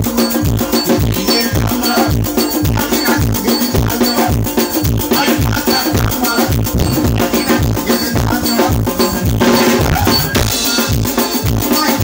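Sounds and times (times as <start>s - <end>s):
cowbell-like percussion: 0.0s - 12.0s
fast drum beat: 0.0s - 12.0s
electronic keyboards: 0.1s - 12.0s.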